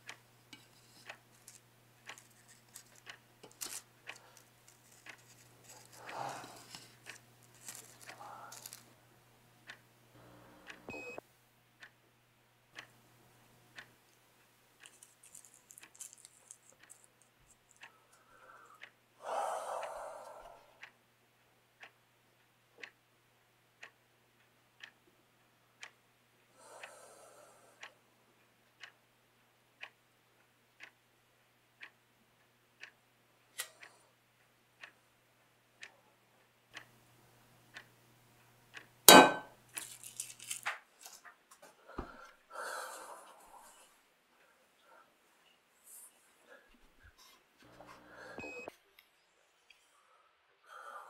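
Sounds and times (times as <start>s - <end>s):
clock ticking: 0.0s - 8.9s, 9.5s - 12.1s, 12.7s - 19.1s, 20.8s - 21.0s, 21.8s - 26.9s, 27.8s - 31.1s, 31.7s - 35.1s, 35.7s - 36.0s, 36.7s - 37.0s, 37.6s - 39.5s.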